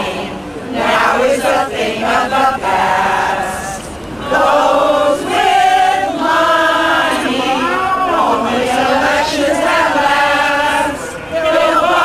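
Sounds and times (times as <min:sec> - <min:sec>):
women singing unaccompanied: 0:00.0 - 0:12.0.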